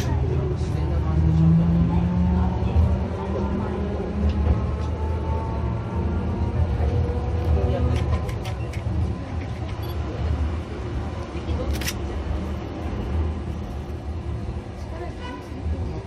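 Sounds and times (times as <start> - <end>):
tram motors and wheels rumbling: 0.0 - 16.0.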